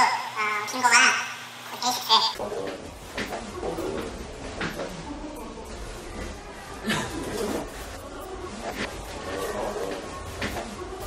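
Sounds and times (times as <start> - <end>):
steady hum: 0.0 - 11.0
faint low voices: 2.4 - 11.0.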